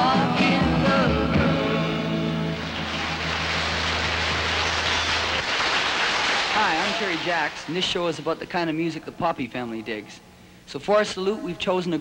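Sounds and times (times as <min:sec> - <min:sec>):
applause: 0:02.5 - 0:08.3.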